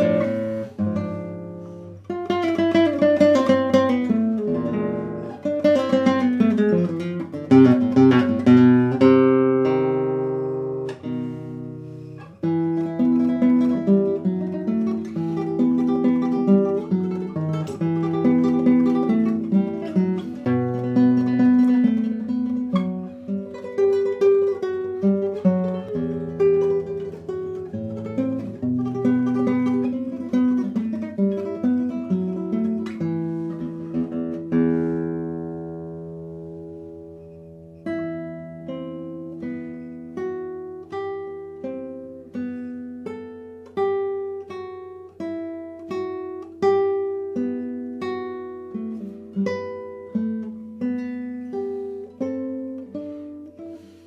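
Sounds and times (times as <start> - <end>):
classical guitar playing: 0.0 - 54.0.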